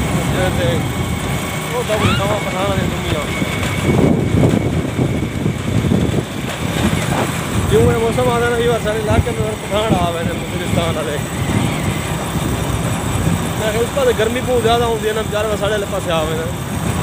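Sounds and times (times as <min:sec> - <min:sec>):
man speaking: 0:00.0 - 0:00.9, 0:01.6 - 0:03.5, 0:07.6 - 0:11.4, 0:13.5 - 0:16.6
wind rumbling on microphone: 0:00.0 - 0:15.0.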